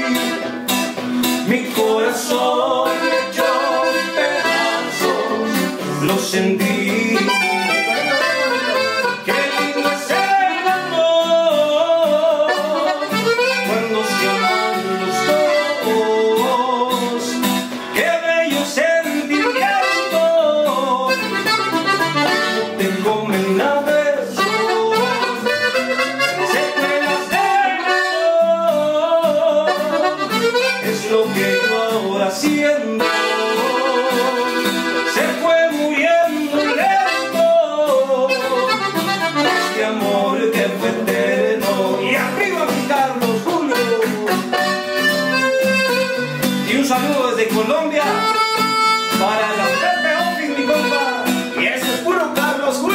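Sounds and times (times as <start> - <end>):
man singing: 0.0 - 45.7, 46.4 - 52.9
button accordion melody: 0.0 - 52.9
strummed acoustic guitar: 0.0 - 52.9.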